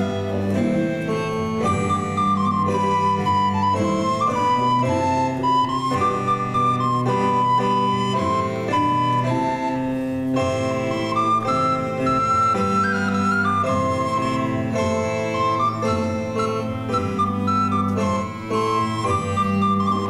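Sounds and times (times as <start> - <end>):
flute-like wind melody: 0.0 - 20.0.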